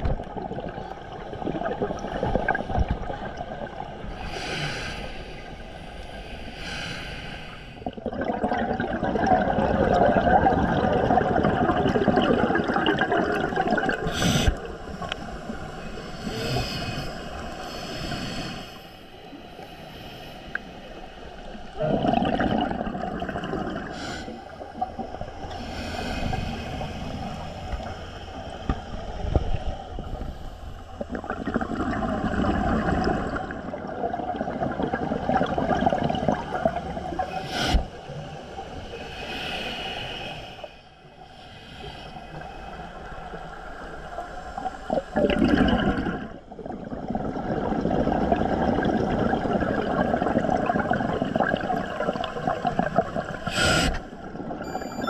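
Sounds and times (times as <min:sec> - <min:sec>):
gurgling exhaled bubbles: 0:00.0 - 0:04.3, 0:07.8 - 0:15.6, 0:21.6 - 0:38.1, 0:44.6 - 0:55.0
hissing regulator inhalations: 0:38.7 - 0:42.9, 0:53.4 - 0:54.2.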